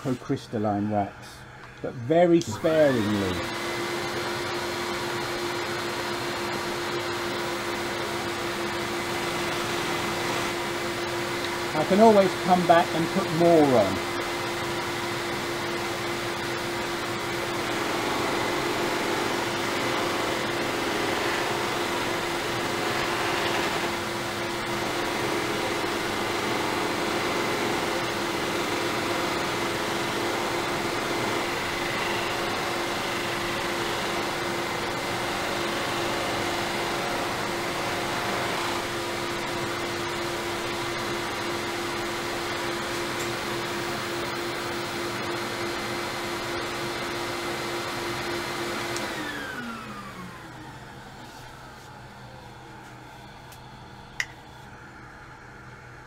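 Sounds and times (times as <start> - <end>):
respirator fan: 0.0 - 56.0
lathe buffing mop whirring: 1.6 - 51.9.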